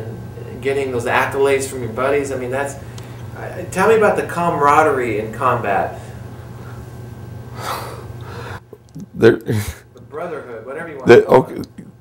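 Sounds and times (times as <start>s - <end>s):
man breathing in: 7.5s - 8.6s.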